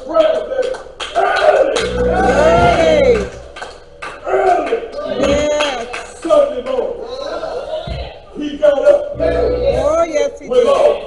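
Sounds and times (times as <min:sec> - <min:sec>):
preacher's voice: 0:01.8 - 0:03.4, 0:05.0 - 0:06.6, 0:08.5 - 0:10.8
held organ note: 0:01.8 - 0:03.6, 0:09.1 - 0:10.3.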